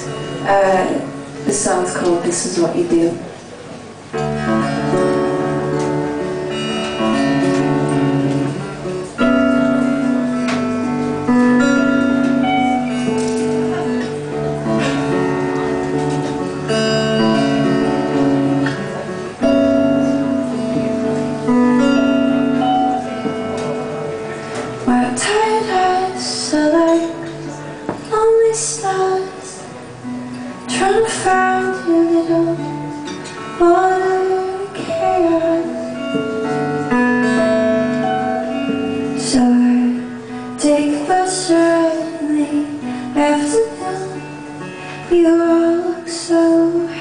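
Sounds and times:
acoustic guitar picked chords: 0:03.3 - 0:47.0.

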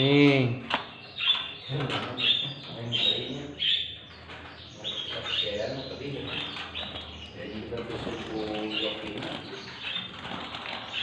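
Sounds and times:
caged songbirds chirping: 0:00.0 - 0:11.0.

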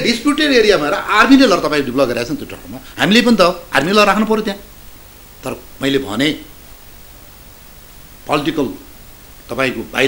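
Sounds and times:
recording hiss: 0:00.0 - 0:10.0.

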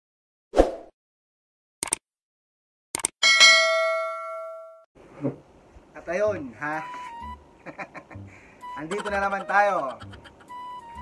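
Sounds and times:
bright bell ding: 0:03.2 - 0:04.8.

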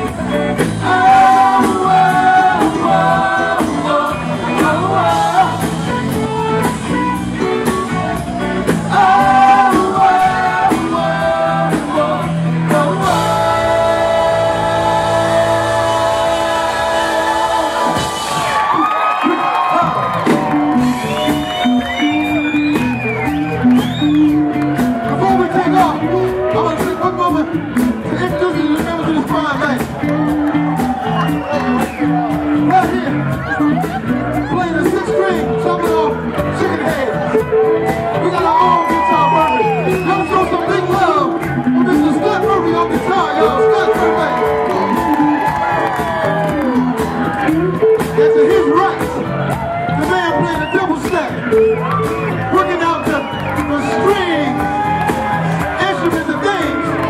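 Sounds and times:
live band playing: 0:00.0 - 0:57.0
audience cheering and whooping: 0:12.9 - 0:27.1, 0:30.0 - 0:35.4, 0:36.8 - 0:57.0.

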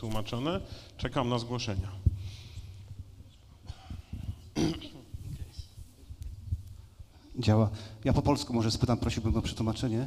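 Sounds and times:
microphone handling bumps and rustles: 0:01.7 - 0:07.1.

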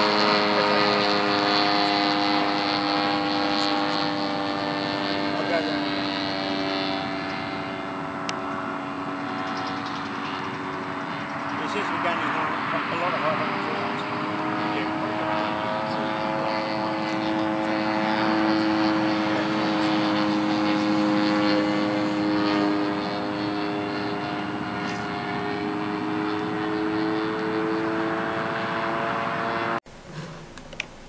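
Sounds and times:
propeller engine drone: 0:00.0 - 0:31.0.

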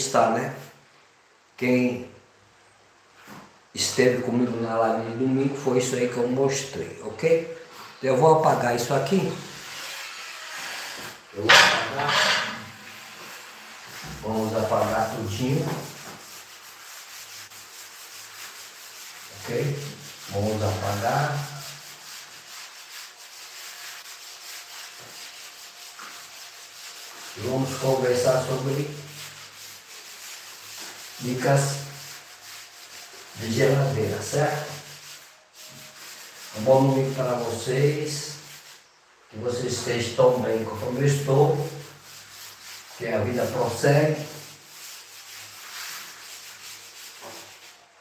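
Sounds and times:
chalk wiped off chalkboard: 0:07.4 - 0:48.0.

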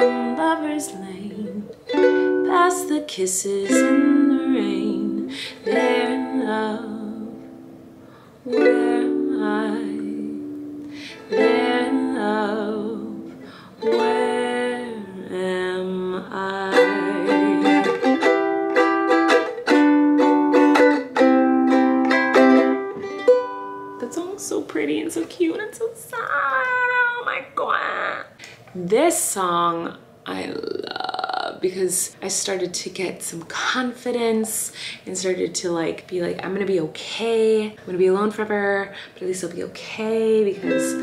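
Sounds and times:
woman singing a slow ballad: 0:00.0 - 0:01.7, 0:02.4 - 0:07.5, 0:08.5 - 0:18.0
ukulele strumming: 0:00.0 - 0:25.7, 0:40.2 - 0:41.0.

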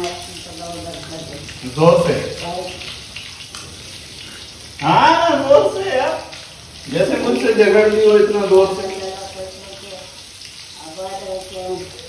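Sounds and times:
fish sizzling in hot oil: 0:00.0 - 0:12.0.

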